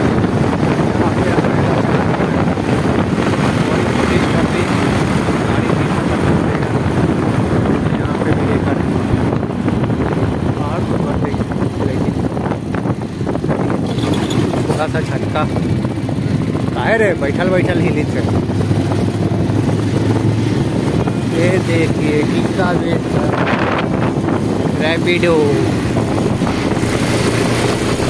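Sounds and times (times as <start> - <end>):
motorcycle engine running: 0.0 - 28.0
wind rushing over microphone: 0.0 - 28.0.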